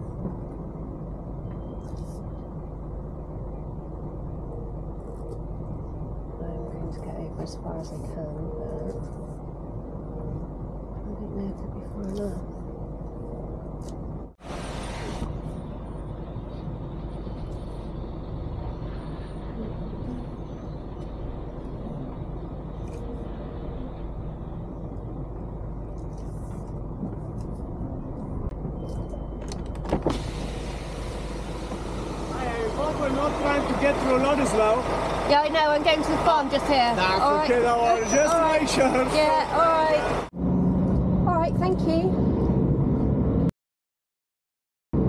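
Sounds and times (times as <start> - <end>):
lorry engine and road drone: 0.0 - 43.5
hiss: 14.4 - 15.4, 30.1 - 34.0.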